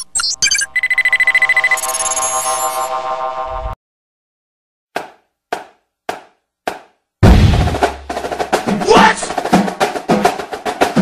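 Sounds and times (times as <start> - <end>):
drumstick strikes: 5.0 - 11.0.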